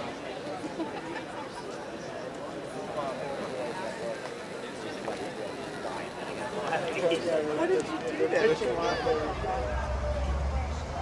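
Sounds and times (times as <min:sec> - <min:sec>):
indistinct talk: 0:00.0 - 0:11.0.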